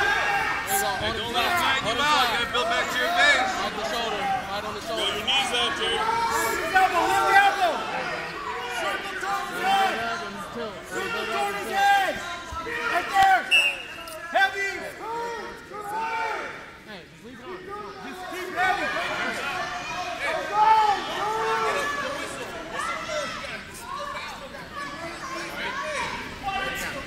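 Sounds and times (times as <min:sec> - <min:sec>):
people talking and calling out: 0:00.0 - 0:27.0.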